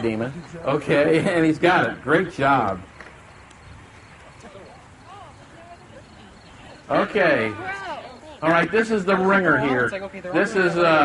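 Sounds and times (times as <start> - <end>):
distant voices calling: 0.0 - 11.0
outdoor background hiss: 0.0 - 11.0.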